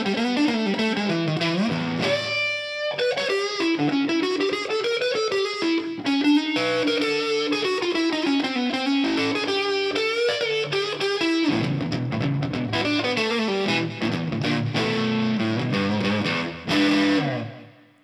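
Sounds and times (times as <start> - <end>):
overdriven electric guitar lead: 0.0 - 18.0.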